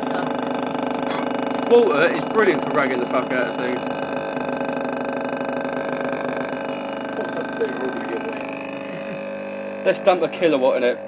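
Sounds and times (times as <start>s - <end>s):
underwater subwoofer steady tone: 0.0s - 11.0s.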